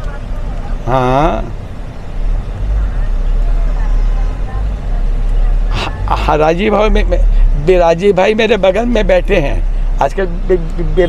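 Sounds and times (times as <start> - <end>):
car engine and road rumble: 0.0 - 11.0.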